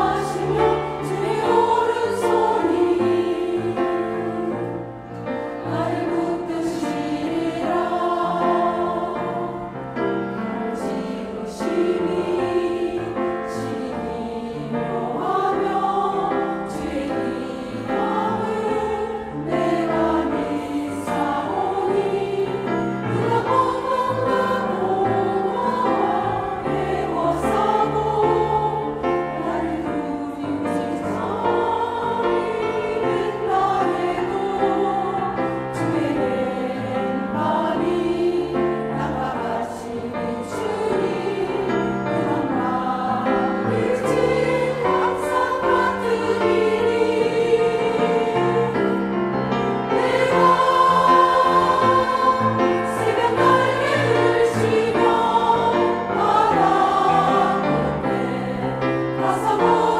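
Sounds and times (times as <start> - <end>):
piano accompaniment: 0.0 - 59.9
women's choir singing a hymn: 0.0 - 59.9.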